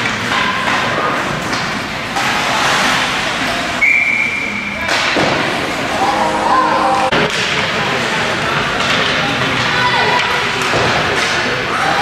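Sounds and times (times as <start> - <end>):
spectators' voices: 3.2 - 12.0
whistle tone: 3.8 - 4.8.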